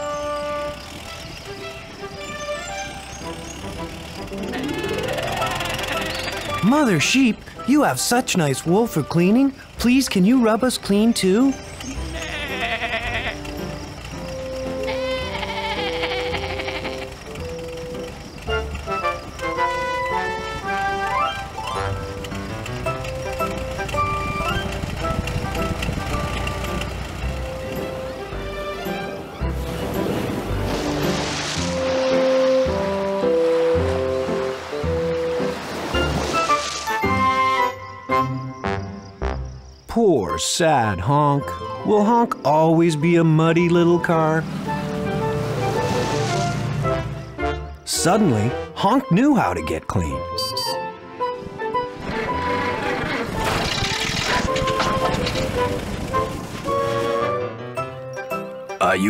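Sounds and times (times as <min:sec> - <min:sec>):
light background music: 0:00.0 - 0:59.0
sheep bleating: 0:11.9 - 0:13.5, 0:14.8 - 0:17.2.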